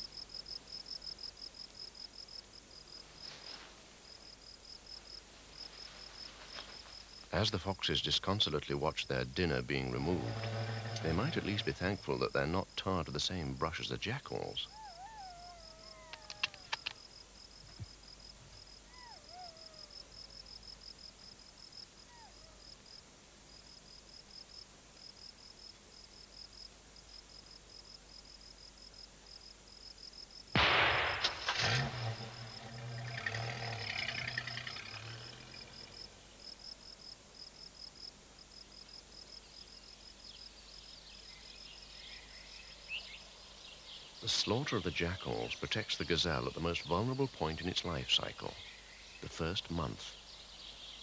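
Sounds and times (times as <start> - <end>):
night insects chirping: 0.0 - 51.0
low rumbling: 9.8 - 12.2, 30.6 - 36.2
sharp clicks: 16.0 - 17.0
rifle shot with echo: 30.6 - 33.0.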